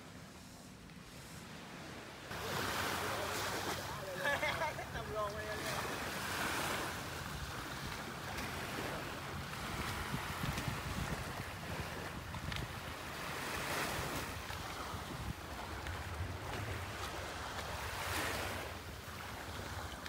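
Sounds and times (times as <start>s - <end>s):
small waves washing onto sand: 0.0s - 20.0s
wind buffeting microphone: 6.3s - 20.0s.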